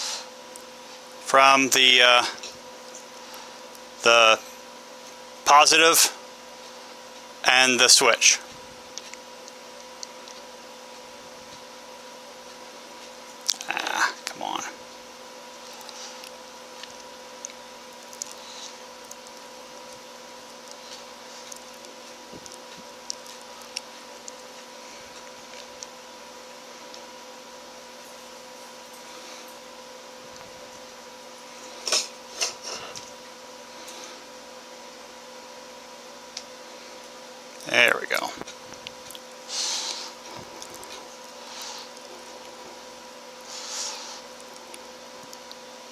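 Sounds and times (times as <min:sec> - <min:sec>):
steady hum: 0:00.0 - 0:45.9.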